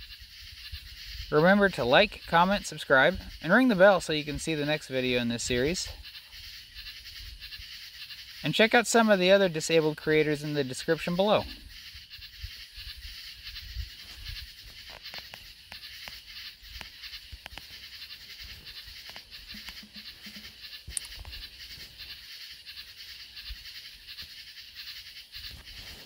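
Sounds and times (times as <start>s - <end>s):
animal sounds: 0.0s - 26.0s.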